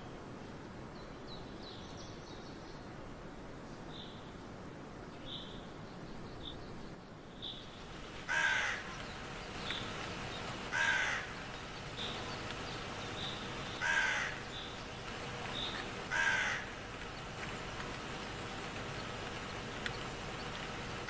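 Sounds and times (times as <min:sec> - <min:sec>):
crow cawing: 0:08.2 - 0:09.0, 0:10.7 - 0:11.5, 0:13.7 - 0:14.8, 0:15.6 - 0:16.9.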